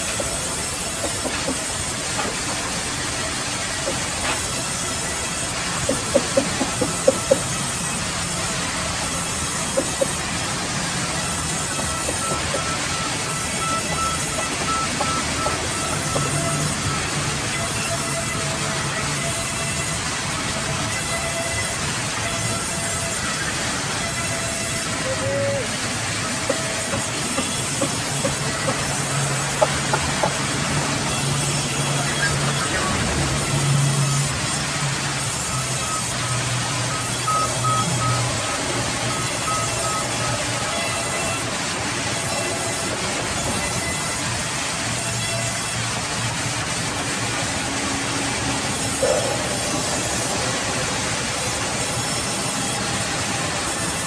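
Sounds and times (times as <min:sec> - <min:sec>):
band saw cutting log: 0:00.0 - 0:54.0.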